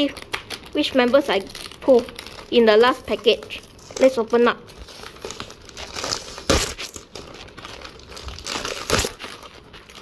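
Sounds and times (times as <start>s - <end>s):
plastic wrapper tearing and crinkling: 0.0s - 10.0s.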